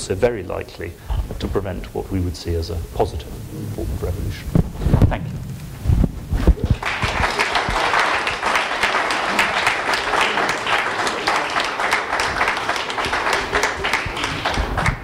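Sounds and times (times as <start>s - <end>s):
audience applauding: 6.5s - 15.0s.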